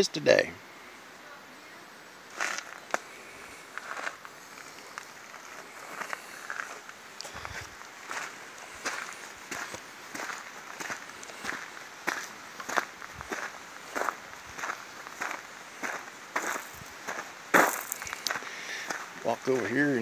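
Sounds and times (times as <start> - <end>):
footsteps crunching on gravel: 2.3 - 20.0.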